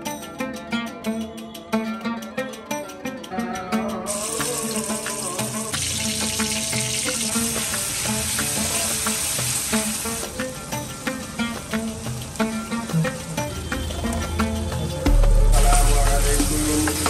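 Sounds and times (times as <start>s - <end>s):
background music: 0.0s - 17.0s
onions sizzling in oil: 4.1s - 10.6s, 11.3s - 13.3s.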